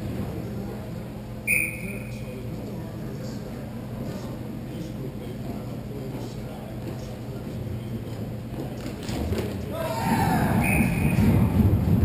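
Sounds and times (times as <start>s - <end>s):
low hum of rink: 0.0s - 12.0s
referee's whistle blast: 1.5s - 2.2s, 10.6s - 11.3s.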